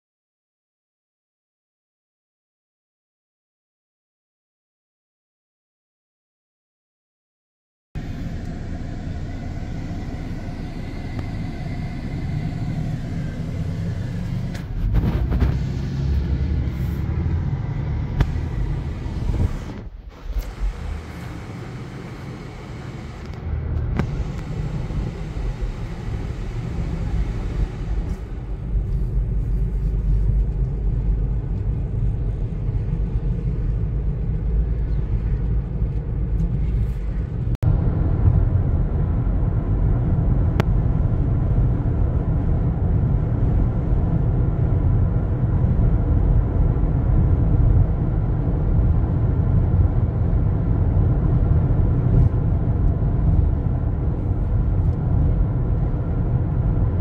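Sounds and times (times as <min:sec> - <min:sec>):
car road noise rumble: 0:08.0 - 0:57.0.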